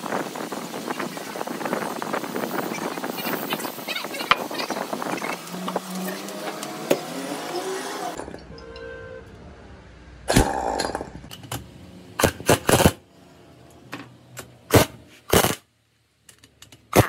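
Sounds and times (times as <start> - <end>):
pneumatic impact wrench bursts: 12.2 - 13.0, 14.7 - 15.6.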